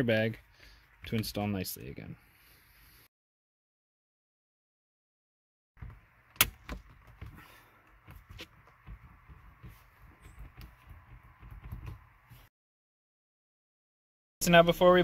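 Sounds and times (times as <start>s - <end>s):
soft knocks and handling noise: 6.6s - 12.5s.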